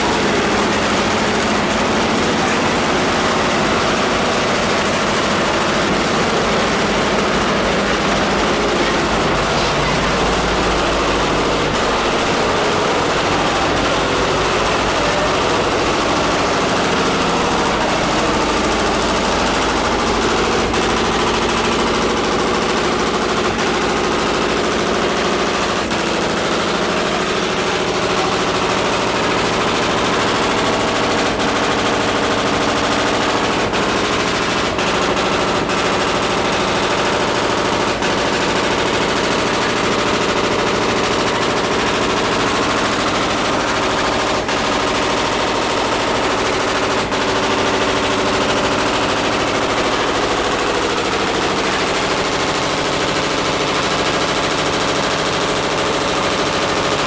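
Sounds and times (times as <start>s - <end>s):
constant machine hum: 0.0s - 57.0s
rattling workshop machinery: 0.0s - 57.0s.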